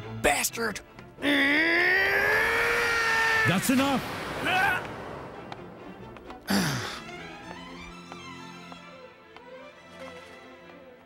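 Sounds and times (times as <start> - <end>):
man's long yell: 1.2 - 3.7
dramatic orchestral music: 3.4 - 11.0.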